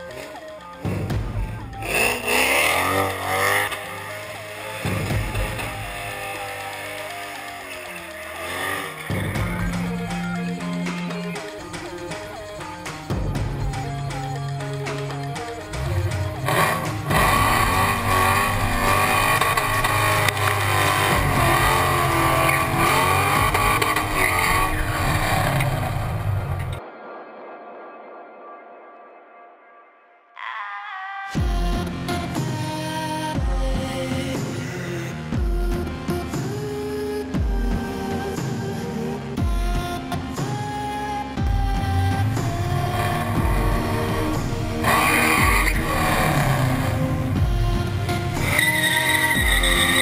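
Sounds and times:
car engine revving: 0.0 - 26.8, 41.8 - 50.0
background music: 0.0 - 50.0
tyres squealing: 48.4 - 50.0.

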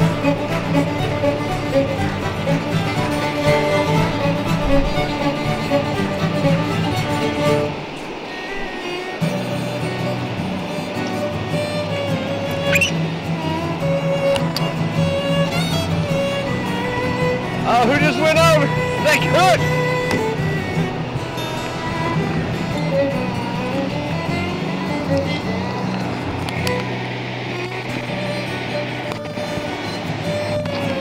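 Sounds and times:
fiddle music: 0.0 - 31.0
steady string tones: 0.0 - 31.0.

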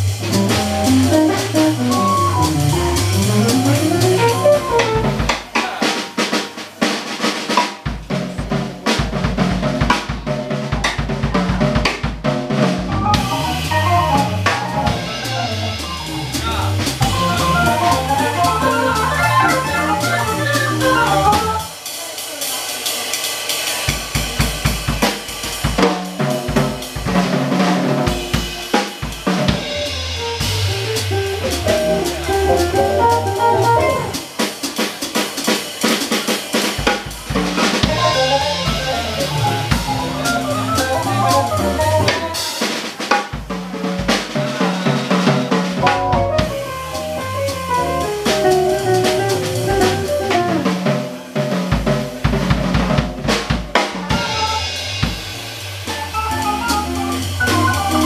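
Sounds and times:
drum kit: 0.0 - 58.0
organ: 17.1 - 21.7
electric guitar: 30.4 - 34.2.

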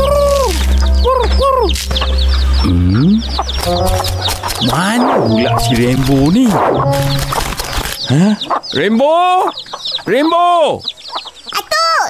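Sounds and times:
hens clucking: 0.0 - 11.7
chicks peeping: 0.0 - 12.0.

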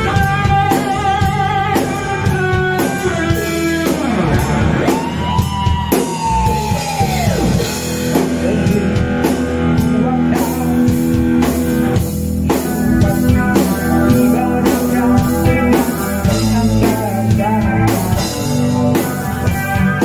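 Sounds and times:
bass guitar: 0.0 - 20.0
drum kit: 0.0 - 20.0
electric guitar: 0.0 - 20.0.

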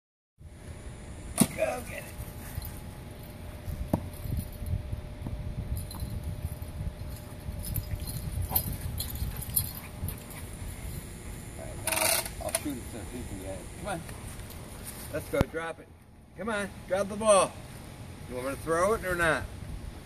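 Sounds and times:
steady low rumble: 0.4 - 11.9.

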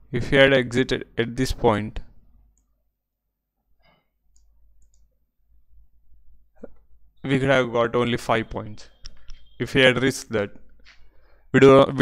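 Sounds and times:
computer mouse clicks: 4.3 - 5.1.

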